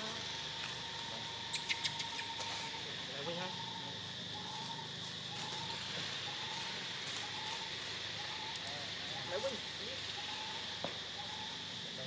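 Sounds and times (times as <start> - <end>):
high-pitched insect buzzing: 0.0 - 12.0.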